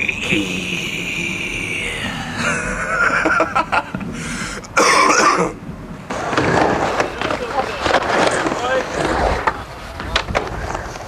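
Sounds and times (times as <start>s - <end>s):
skateboard wheels rolling on ramp: 5.7s - 11.0s.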